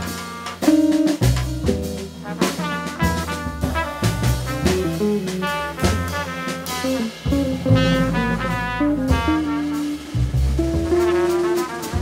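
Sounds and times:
jazz quartet playing: 0.0s - 12.0s
trumpet playing: 0.0s - 12.0s.

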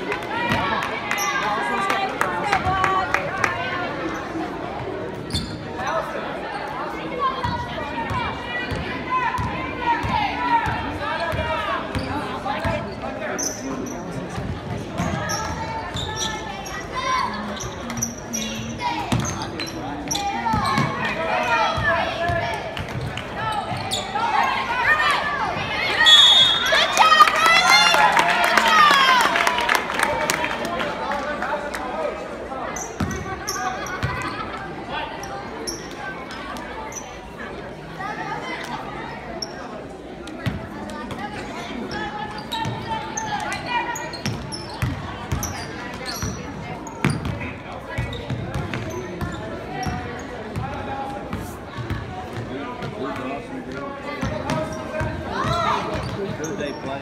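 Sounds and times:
people calling out in echoing gym: 5.0s - 29.4s, 31.8s - 56.9s.

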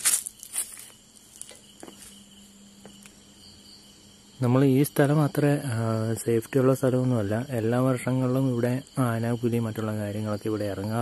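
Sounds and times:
short rustling: 0.0s - 2.3s
crickets chirring: 0.0s - 11.0s.

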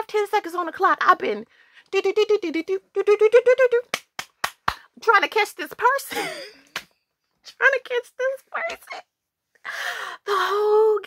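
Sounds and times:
sharp hand claps: 3.8s - 4.9s.

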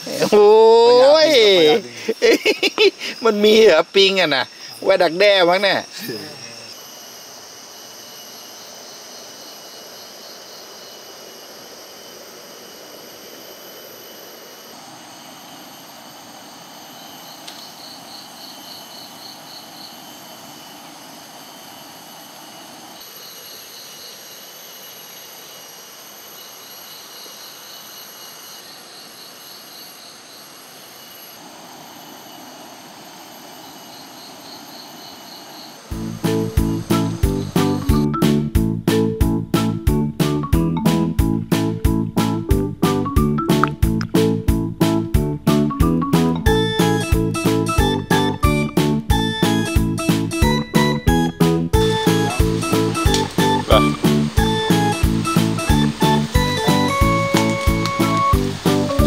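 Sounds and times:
insect pulsing trill: 0.0s - 59.0s
insects buzzing: 0.0s - 59.0s
loud music: 46.2s - 59.0s.

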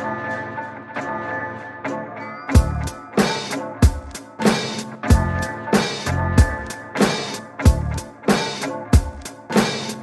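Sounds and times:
hip hop instrumental beat: 0.0s - 10.0s.

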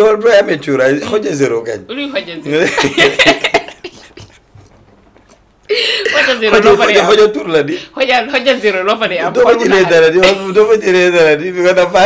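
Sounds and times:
people laughing: 2.6s - 4.4s.

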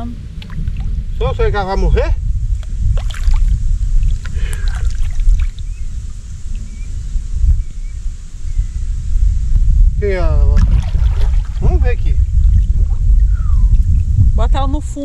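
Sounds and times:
water sloshing and splashing: 0.0s - 1.2s, 2.6s - 6.0s, 10.6s - 14.1s
low rumble: 0.0s - 15.0s.

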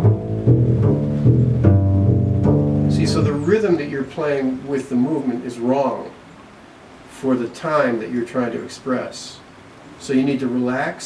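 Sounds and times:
double bass plucked notes: 0.0s - 4.5s.

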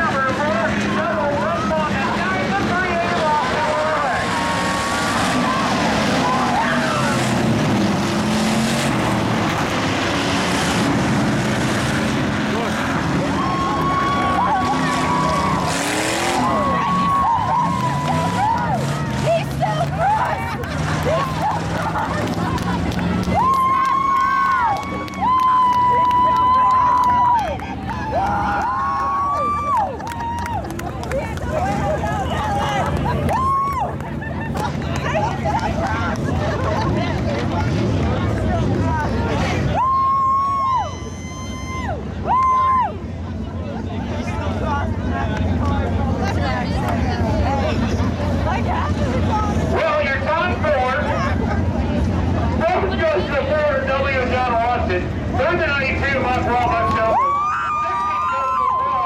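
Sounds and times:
race car engines revving: 0.0s - 59.0s.

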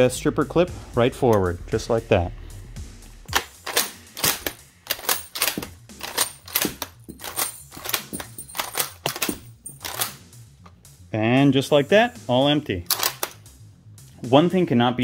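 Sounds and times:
rifle bolt clicking and clacking: 3.3s - 10.2s, 12.9s - 13.4s.

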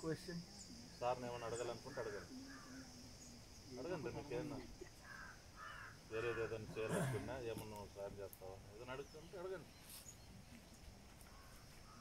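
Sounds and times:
crow cawing: 1.8s - 2.9s, 5.0s - 6.6s.

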